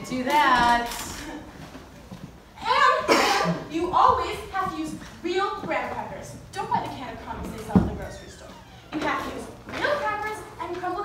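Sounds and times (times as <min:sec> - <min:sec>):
short cough: 0:03.1 - 0:03.6.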